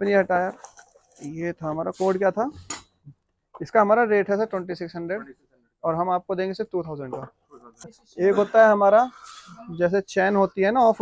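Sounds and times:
man talking: 0.0s - 0.6s, 1.2s - 2.7s, 3.6s - 11.0s.

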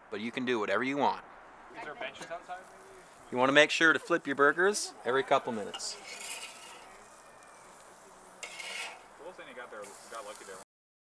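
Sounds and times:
metal spatula scraping grill grate: 2.1s - 10.6s.

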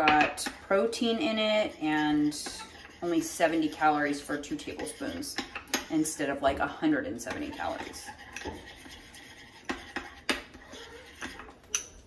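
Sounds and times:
spoon stirring in ceramic bowl: 0.0s - 12.0s
spoon clinking against bowl: 11.2s - 12.0s.

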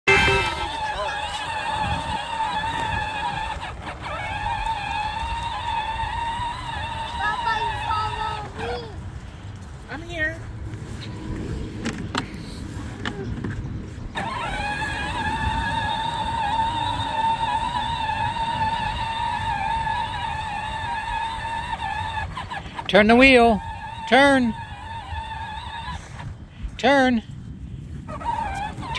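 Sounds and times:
electric motors whining: 0.0s - 8.9s, 14.1s - 26.3s.

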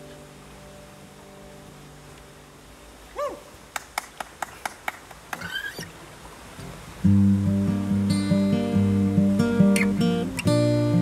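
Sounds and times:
faint steady hiss: 0.0s - 11.0s
animal call: 3.2s - 3.5s.

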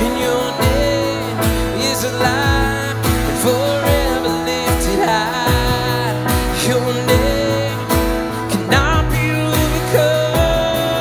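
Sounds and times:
keyboard chords: 0.0s - 11.0s
low beat: 0.0s - 11.0s
man singing: 0.0s - 11.0s
strummed acoustic guitar: 0.0s - 11.0s.

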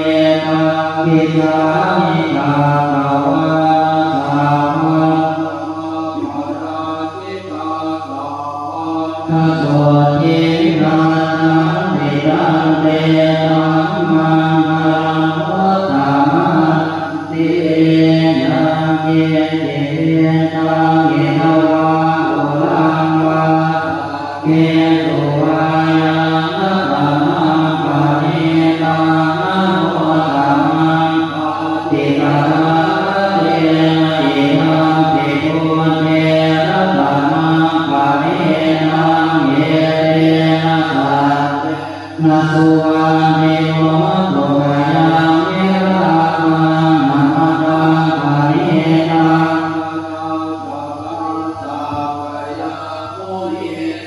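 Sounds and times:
monks chanting together: 0.0s - 54.0s.

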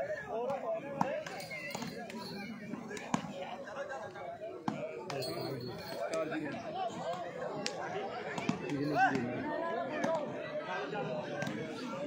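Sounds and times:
crowd chattering and calling out: 0.0s - 12.0s
hands slapping volleyball: 2.8s - 3.4s, 7.1s - 9.3s.

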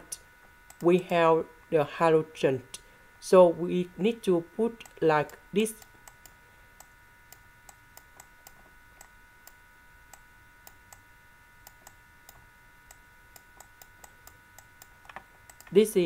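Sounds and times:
faint steady electrical whine: 0.0s - 16.0s
faint irregular clicks: 4.8s - 11.0s, 11.6s - 15.8s.

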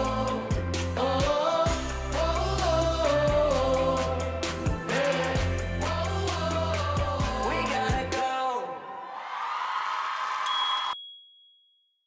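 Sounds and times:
bright chime: 10.5s - 11.8s.

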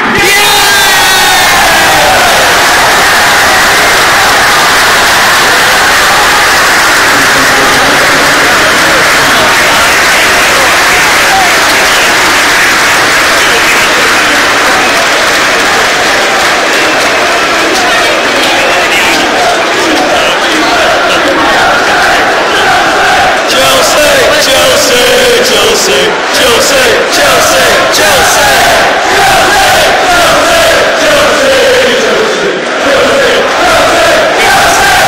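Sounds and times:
crowd cheering and chanting: 0.0s - 35.0s
crowd singing a chant: 1.6s - 35.0s.

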